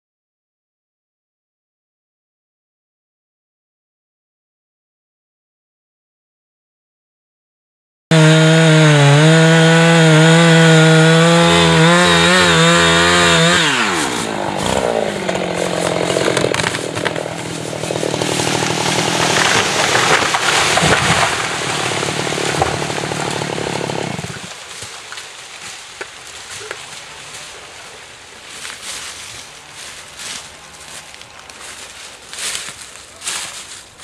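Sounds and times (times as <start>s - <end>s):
chainsaw running: 8.1s - 25.1s, 26.6s - 33.7s
tree hitting the ground: 8.2s - 27.0s
wood cracking and snapping: 9.2s - 27.1s.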